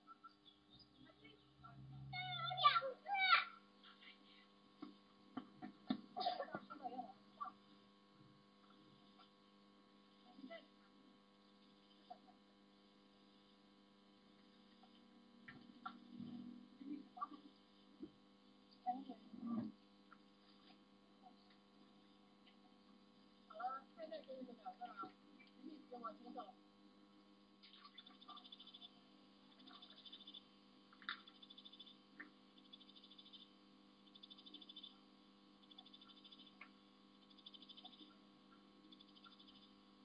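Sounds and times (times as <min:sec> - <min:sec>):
electrical hum: 0:00.0 - 0:40.0.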